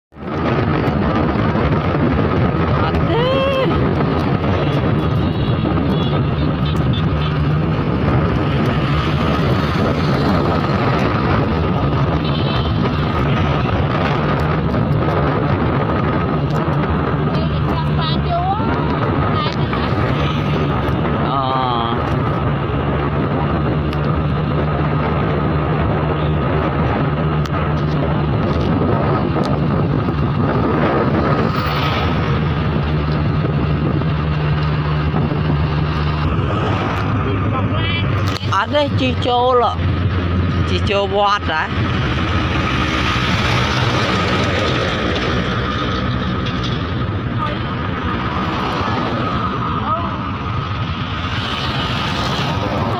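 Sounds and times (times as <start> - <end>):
road and wind noise: 0.0 - 52.9
motorbike engine drone: 0.2 - 52.9
oncoming traffic passing: 0.2 - 52.9.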